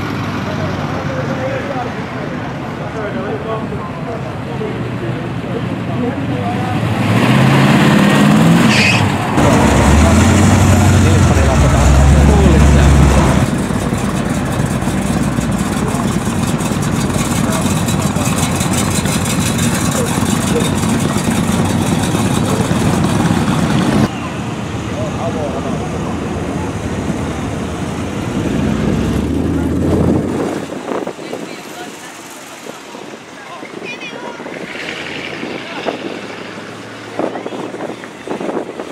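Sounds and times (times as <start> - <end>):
car engines revving and rumbling: 0.0 - 38.9.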